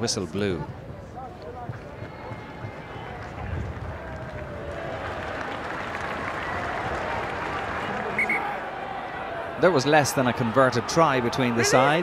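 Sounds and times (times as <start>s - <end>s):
stadium crowd applauding: 1.7s - 12.0s.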